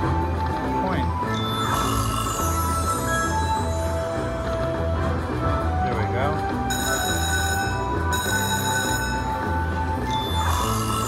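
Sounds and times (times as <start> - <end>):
electronic game music: 0.0 - 11.0
slot machine chiming tones: 0.9 - 4.7, 6.6 - 11.0.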